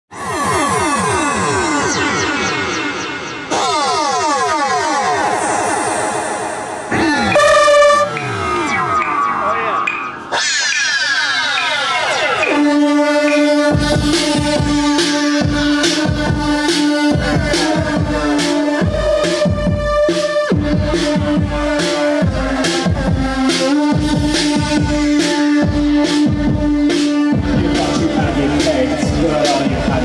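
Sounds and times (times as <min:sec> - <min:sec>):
synthesizer pitch sweeps: 0:00.1 - 0:30.0
bright synthesizer tone: 0:00.2 - 0:22.0
held synthesizer chord: 0:00.4 - 0:10.4, 0:11.6 - 0:30.0.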